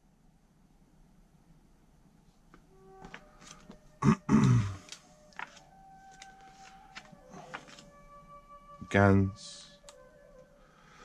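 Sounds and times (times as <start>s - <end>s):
faint background music: 2.7s - 11.0s
man grunting: 4.0s - 4.8s.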